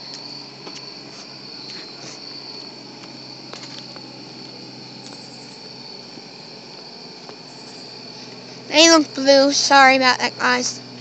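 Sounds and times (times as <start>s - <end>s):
crickets chirping: 0.0s - 11.0s.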